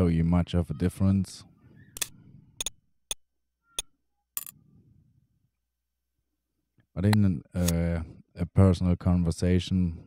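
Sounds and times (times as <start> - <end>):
computer mouse clicks: 2.0 - 3.2.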